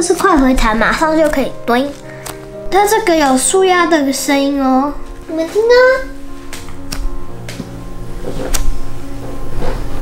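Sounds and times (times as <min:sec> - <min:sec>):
background music: 0:00.0 - 0:10.0
foam squishy clicks: 0:01.2 - 0:02.4.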